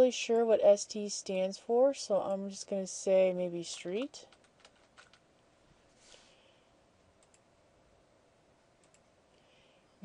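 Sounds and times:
faint computer clicks: 0:07.2 - 0:07.5, 0:08.8 - 0:09.1.

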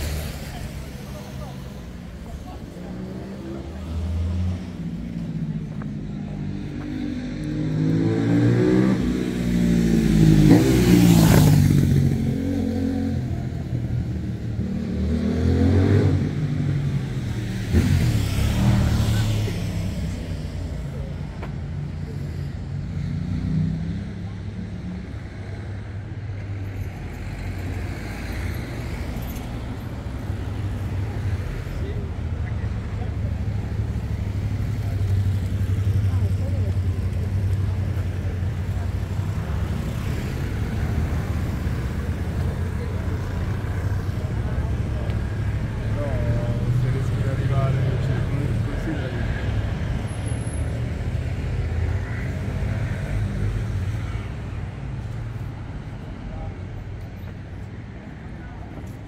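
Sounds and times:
vehicles passing by: 0:00.0 - 0:59.0.

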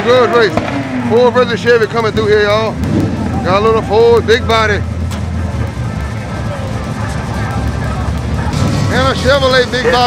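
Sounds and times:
pickup truck engine idling: 0:01.1 - 0:10.0.

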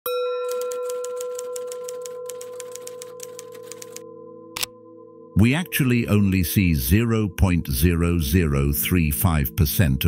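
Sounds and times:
typewriter-like ticks: 0:00.5 - 0:04.0.

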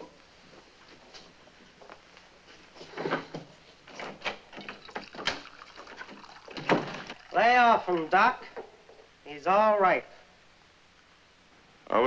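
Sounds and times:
objects knocking and clicking: 0:03.1 - 0:07.2.

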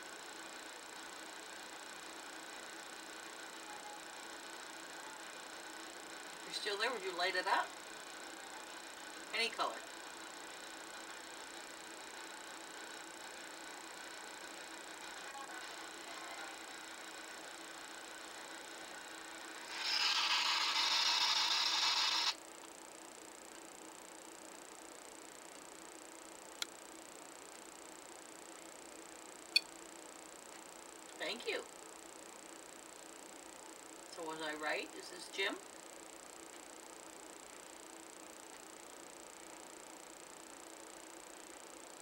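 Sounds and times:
electronic alarm buzzer: 0:19.6 - 0:22.4.

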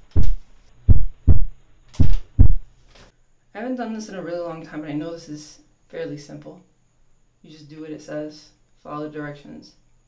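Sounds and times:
heartbeat thumps: 0:00.0 - 0:02.7.

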